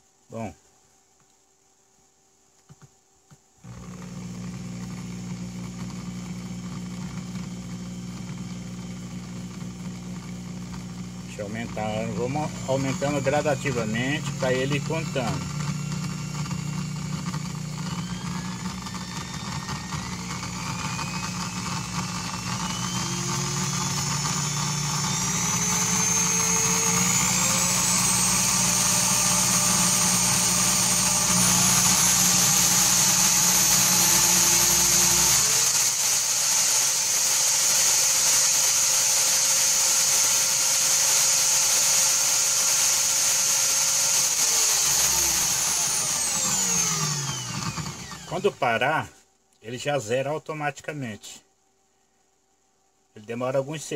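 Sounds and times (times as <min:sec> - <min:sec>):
electric drill motor whining: 0:03.6 - 0:48.7.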